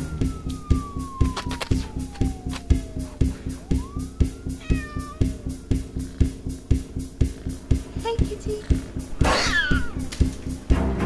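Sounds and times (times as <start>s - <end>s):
orchestral music with pulsing beat: 0.0s - 11.0s
cat meowing: 2.7s - 5.8s, 9.3s - 10.0s.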